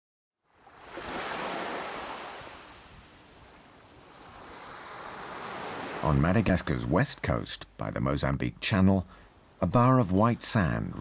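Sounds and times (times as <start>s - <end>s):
waves washing onto beach: 0.5s - 6.6s.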